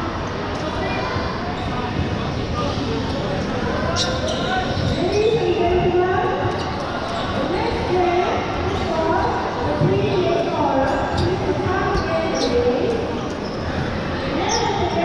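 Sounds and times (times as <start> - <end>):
chatter and shouts of many people: 0.0 - 15.0.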